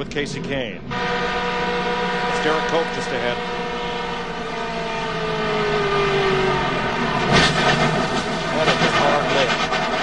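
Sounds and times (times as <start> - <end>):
race car engine from cockpit: 0.0 - 10.0.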